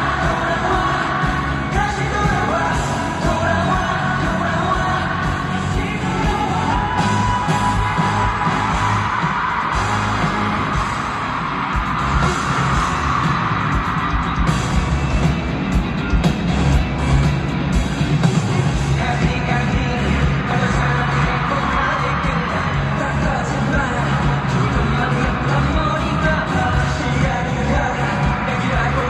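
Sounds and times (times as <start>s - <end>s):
group singing into microphones: 0.0s - 8.0s
amplified pop song: 0.0s - 29.0s
fans yelling and cheering: 0.0s - 29.0s.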